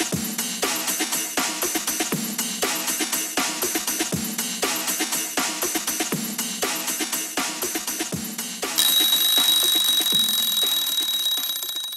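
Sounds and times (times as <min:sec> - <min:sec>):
kitchen timer alarm ringing: 0:08.8 - 0:11.9.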